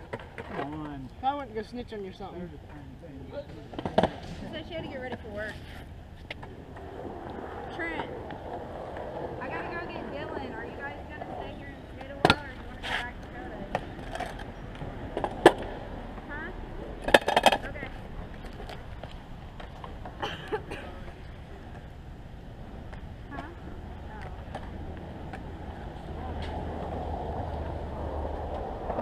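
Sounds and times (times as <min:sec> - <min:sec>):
hard wheels rolling on concrete: 0:00.0 - 0:29.0
scooter falling on concrete: 0:03.7 - 0:04.4, 0:12.0 - 0:15.8, 0:17.0 - 0:21.2.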